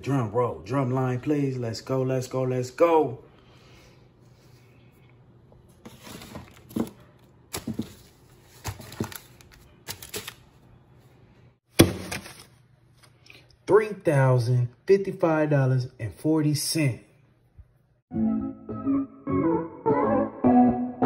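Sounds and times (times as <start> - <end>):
paper rustle: 5.8 - 10.6, 11.8 - 13.2.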